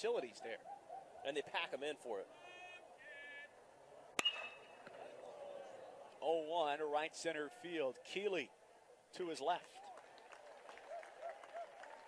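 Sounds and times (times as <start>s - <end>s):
metal bat hitting baseball: 4.2s - 5.0s.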